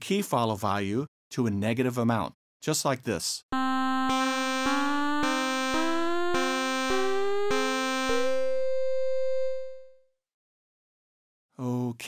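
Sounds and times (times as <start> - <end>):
synthesizer held notes: 3.6 - 10.0.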